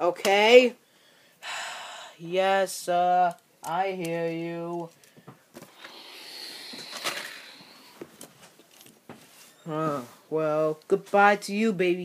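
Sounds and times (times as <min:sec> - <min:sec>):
toy train rustling against fabric: 0:06.6 - 0:10.4.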